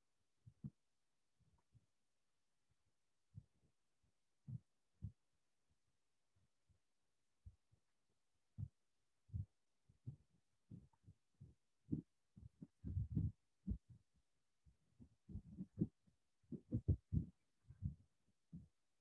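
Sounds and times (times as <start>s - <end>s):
microphone handling thumps: 12.6s - 13.8s, 16.5s - 18.0s.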